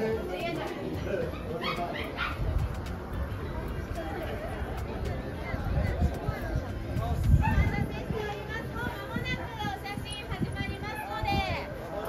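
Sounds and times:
crowd chatter: 0.0 - 12.0
small dog yipping: 1.3 - 2.6.

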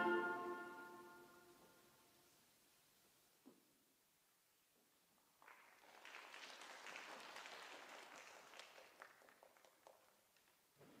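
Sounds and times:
faint audience applause: 5.2 - 10.7.

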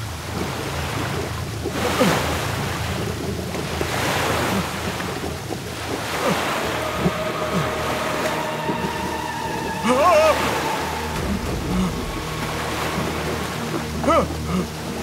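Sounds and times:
floodwater rushing and churning: 0.0 - 15.0.

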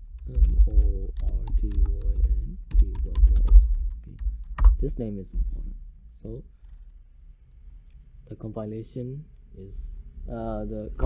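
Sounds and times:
keyboard typing: 0.1 - 4.9.

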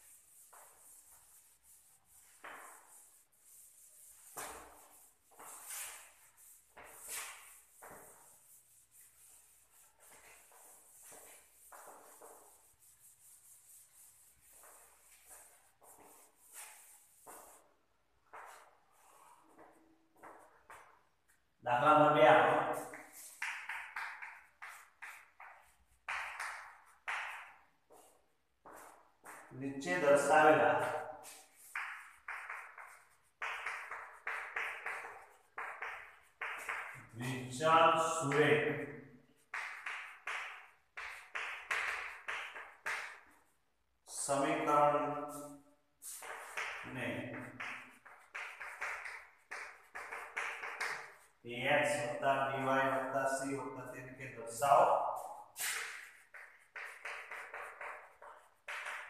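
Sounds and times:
duster swishing on chalkboard: 0.0 - 21.5, 22.3 - 38.4, 39.2 - 59.0.

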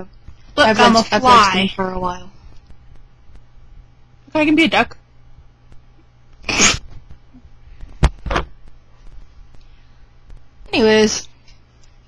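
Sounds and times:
person sneezing: 6.4 - 6.9.

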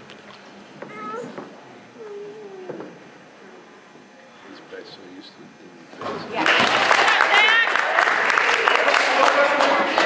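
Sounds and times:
low gym hubbub: 0.0 - 10.0.

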